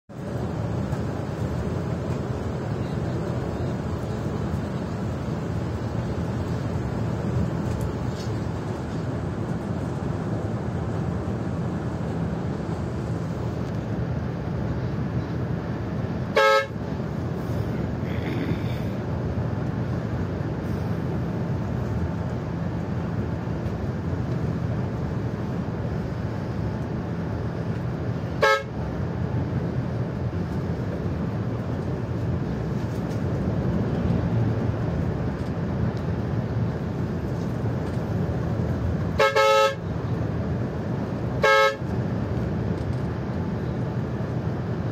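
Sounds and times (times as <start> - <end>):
coach engine and road drone: 0.1 - 44.9
horn blasts: 16.3 - 16.8, 28.4 - 28.7, 39.1 - 39.8, 41.4 - 41.9.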